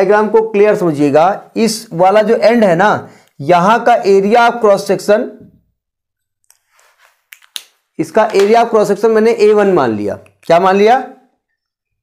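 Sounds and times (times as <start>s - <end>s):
marker clicks: 7.3s - 8.6s, 10.2s - 10.6s.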